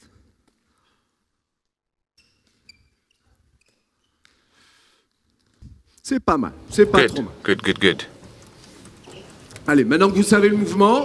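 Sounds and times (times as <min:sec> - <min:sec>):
shoes squeaking on floor: 0:02.2 - 0:05.7, 0:06.7 - 0:11.0.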